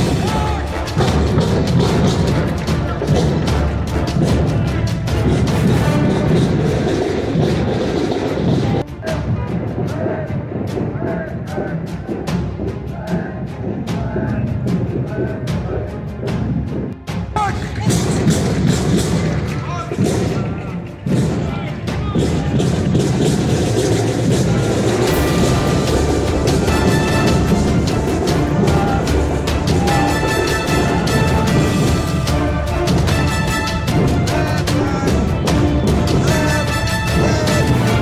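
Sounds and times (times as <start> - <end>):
drums beating: 0.0 - 38.0
marching band playing: 0.0 - 38.0
people's voices: 0.0 - 38.0.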